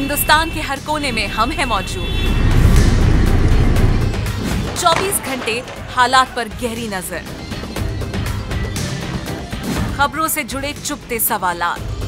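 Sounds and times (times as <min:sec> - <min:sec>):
promo music with deep bass rumble: 0:00.0 - 0:12.0
voice-over: 0:04.8 - 0:07.2.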